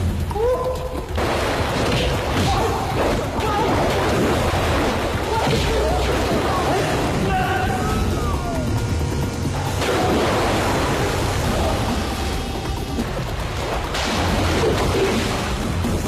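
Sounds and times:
action film music: 0.0s - 16.0s
water splashing: 0.0s - 16.0s
sharp hits: 1.1s - 16.0s.

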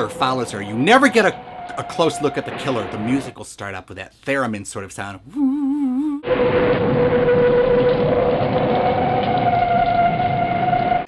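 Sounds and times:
theremin holding high note: 6.2s - 11.0s.

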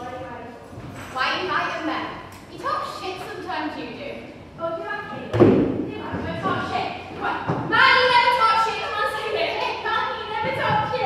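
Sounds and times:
voices speaking: 0.0s - 11.0s.

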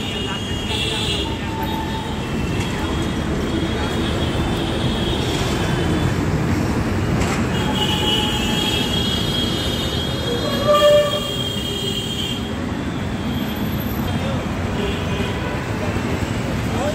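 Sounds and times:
heavy traffic rumble: 0.0s - 16.9s
horn honk: 7.6s - 12.5s.

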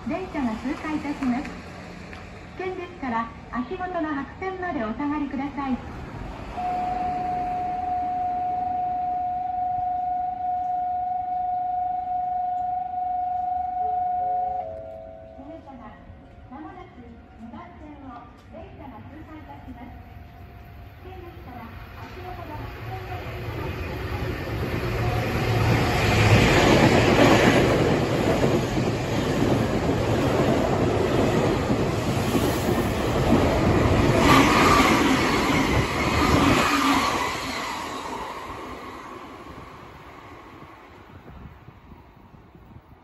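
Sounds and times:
train wheels rumbling on rails: 14.5s - 43.0s.

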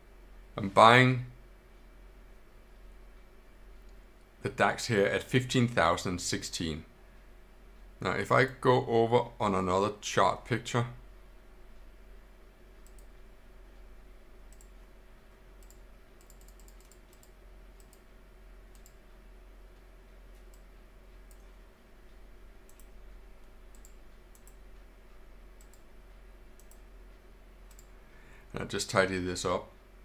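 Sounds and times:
low steady hum: 0.0s - 30.0s
computer mouse clicks: 12.8s - 13.1s, 14.5s - 14.8s, 15.6s - 18.1s, 18.7s - 19.0s, 20.3s - 21.6s, 22.6s - 24.6s, 25.6s - 25.9s, 26.6s - 26.9s, 27.7s - 28.0s.

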